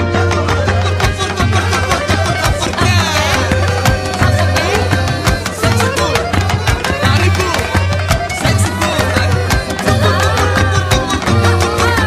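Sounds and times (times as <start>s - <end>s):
flamenco guitar strumming: 0.0s - 12.0s.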